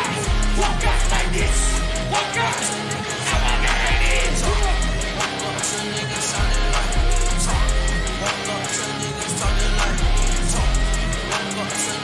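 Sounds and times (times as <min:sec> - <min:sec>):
deep bass notes: 0:00.0 - 0:02.2, 0:03.3 - 0:05.2, 0:06.4 - 0:08.3, 0:09.4 - 0:11.3
trap music through sound system: 0:00.0 - 0:12.0.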